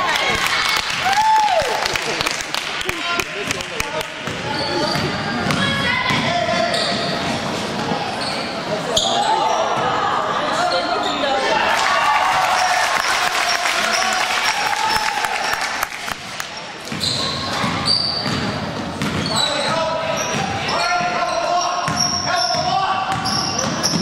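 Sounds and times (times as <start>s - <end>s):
sneaker squeaks: 4.2s - 9.9s, 16.6s - 24.0s.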